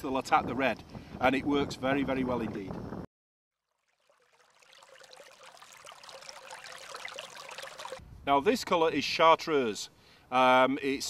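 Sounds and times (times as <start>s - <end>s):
thin steady tone: 3.6s - 8.0s.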